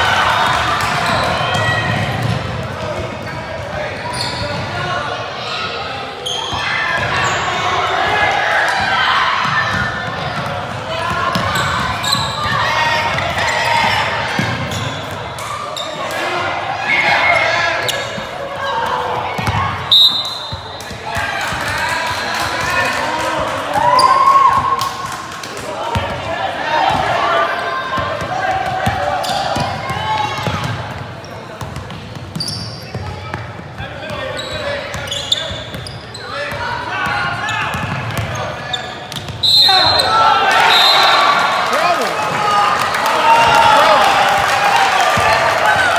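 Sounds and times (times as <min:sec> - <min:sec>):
indistinct voices in gym: 0:00.0 - 0:45.9.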